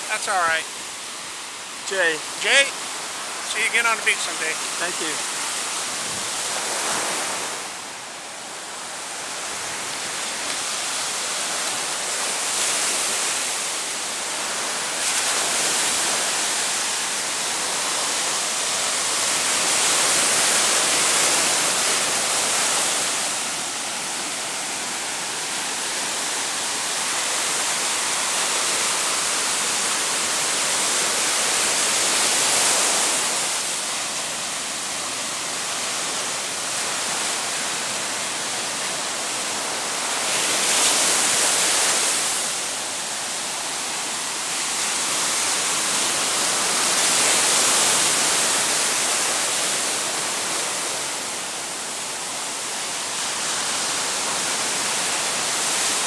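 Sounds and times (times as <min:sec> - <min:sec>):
ocean surf breaking on beach: 0:00.0 - 0:56.0.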